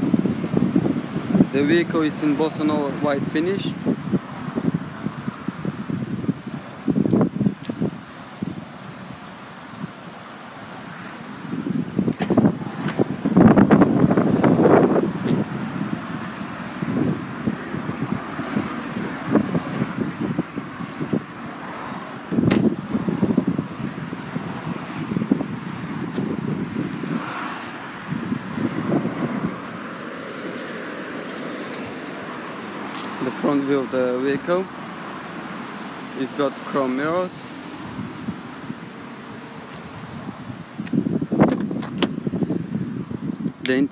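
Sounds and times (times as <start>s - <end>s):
wind buffeting microphone: 0.0s - 36.0s, 36.6s - 43.9s.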